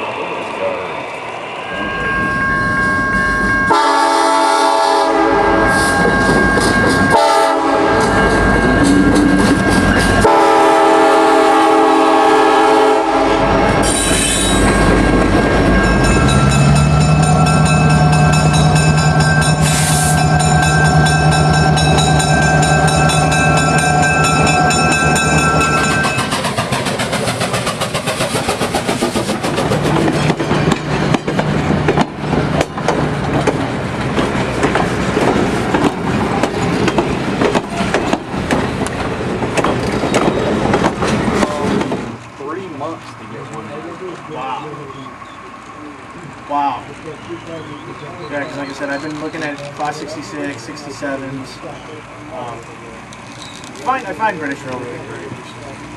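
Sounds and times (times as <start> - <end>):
locomotive drone: 0.0 - 55.9
train horn: 3.6 - 6.0, 7.1 - 8.2, 10.2 - 13.8
train wheels clickety-clack: 5.9 - 10.7, 13.8 - 44.3.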